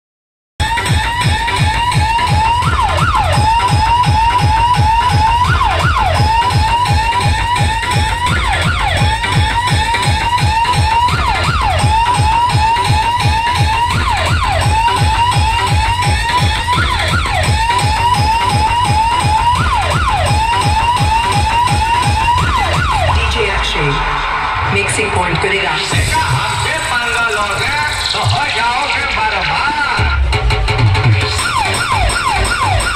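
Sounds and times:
heavy bass thumps: 0.6s - 24.2s, 30.0s - 32.9s
electronic siren-like tone: 0.6s - 24.7s, 31.4s - 32.9s.

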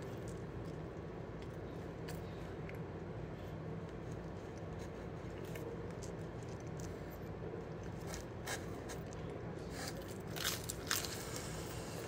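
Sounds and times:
pizza crust crunching: 3.8s - 12.0s.

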